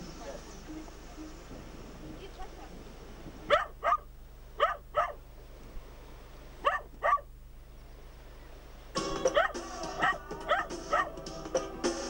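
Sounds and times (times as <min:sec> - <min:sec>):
dog barking: 0:03.5 - 0:05.2, 0:06.6 - 0:07.3, 0:09.3 - 0:11.2.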